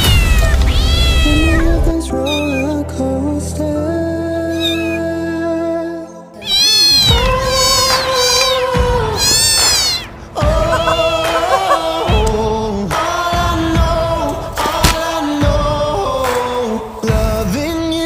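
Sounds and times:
cat meowing: 0:00.0 - 0:02.7, 0:04.5 - 0:05.0, 0:06.4 - 0:10.1, 0:10.7 - 0:12.3
background music: 0:00.0 - 0:18.0.

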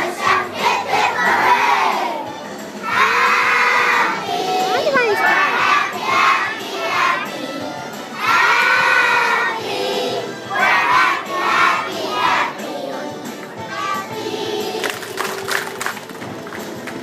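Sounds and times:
children singing in unison: 0:00.0 - 0:15.0.

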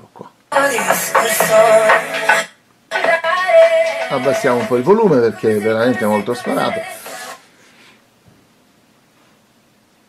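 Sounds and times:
radio broadcast from loudspeaker: 0:00.6 - 0:02.5, 0:03.9 - 0:07.4.

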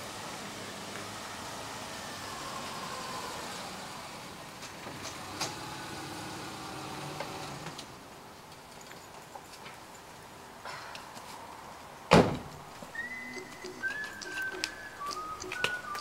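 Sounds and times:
sharp clicks: 0:13.1 - 0:16.0.

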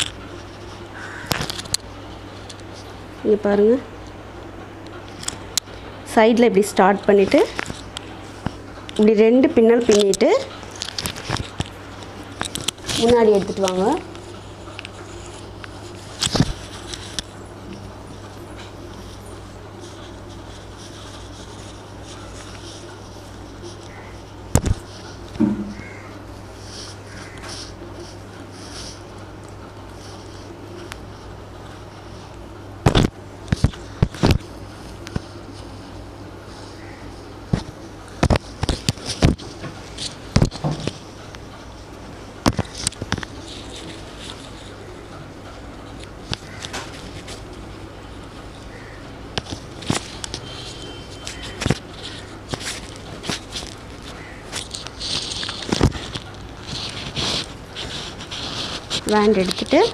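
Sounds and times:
steady low hum: 0:00.0 - 0:59.9
hissy rustles: 0:04.1 - 0:59.9
hair strands rustling: 0:05.1 - 0:32.3, 0:33.7 - 0:44.9, 0:46.0 - 0:59.9
hands knocking and rubbing hair: 0:25.4 - 0:25.9.

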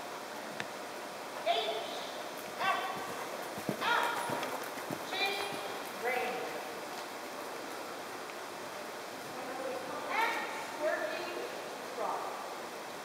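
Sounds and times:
horse hoofbeats on soft ground: 0:02.6 - 0:07.5.

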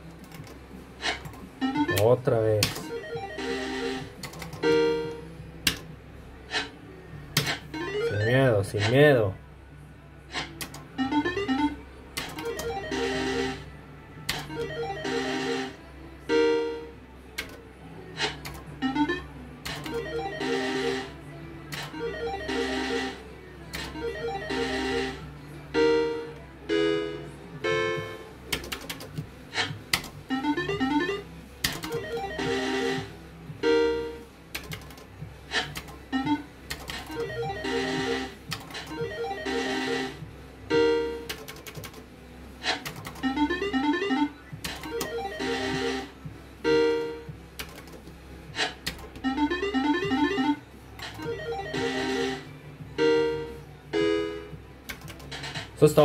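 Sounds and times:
slot machine jingles: 0:49.2 - 0:50.6.

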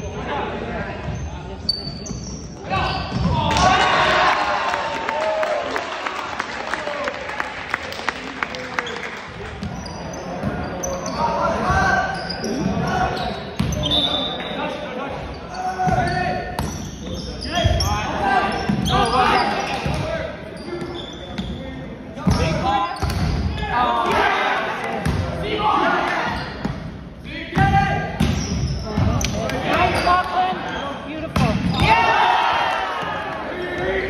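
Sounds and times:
players shouting: 0:02.6 - 0:07.5, 0:23.5 - 0:26.5, 0:29.4 - 0:34.0.

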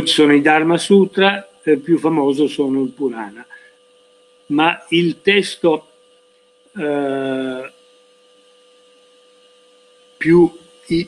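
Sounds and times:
light hiss: 0:00.0 - 0:08.1, 0:08.8 - 0:11.0
electrical hum with high tone: 0:00.0 - 0:11.0.

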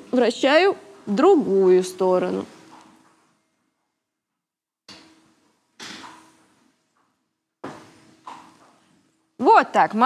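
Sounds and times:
sharp knocks with echo: 0:05.8 - 0:06.3.

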